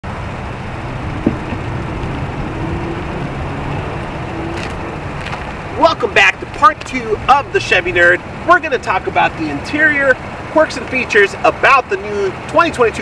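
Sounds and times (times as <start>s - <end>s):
road traffic noise: 0.0s - 13.0s
man's voice: 5.8s - 13.0s.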